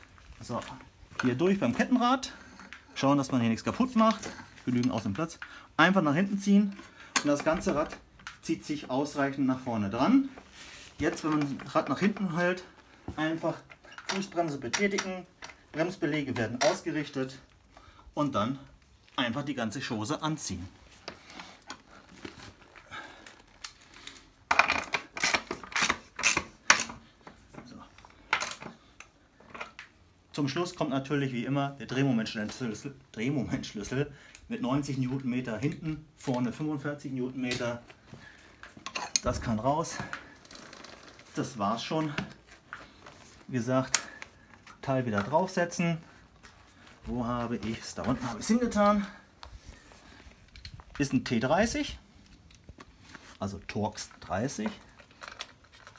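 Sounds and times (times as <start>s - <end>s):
handling of tools: 0.0s - 17.9s, 20.7s - 30.1s, 32.5s - 55.9s
clothing rustling: 0.0s - 24.4s, 32.2s - 55.9s.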